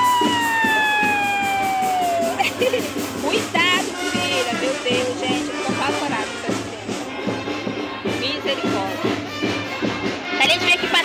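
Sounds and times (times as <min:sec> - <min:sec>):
child screaming: 0:00.0 - 0:02.5.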